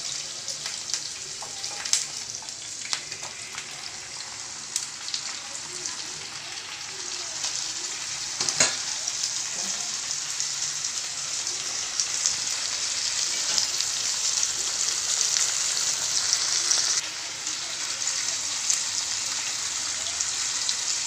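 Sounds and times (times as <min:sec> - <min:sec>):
food sizzling in frying pan: 0:00.0 - 0:21.0.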